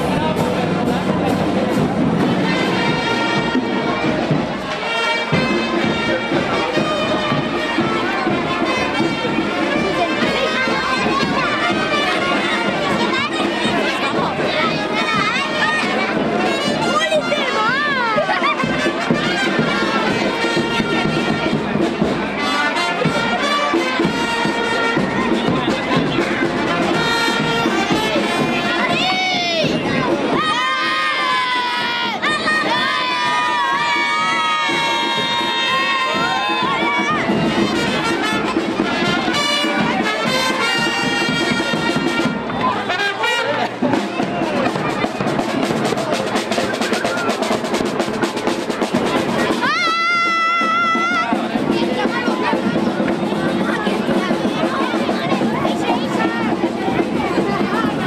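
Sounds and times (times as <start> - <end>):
brass band music: 0.0 - 58.0
children shouting and cheering: 0.0 - 58.0.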